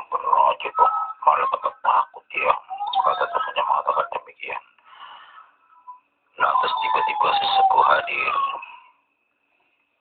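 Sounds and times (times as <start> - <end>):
woman's eerie wail: 6.4 - 8.7.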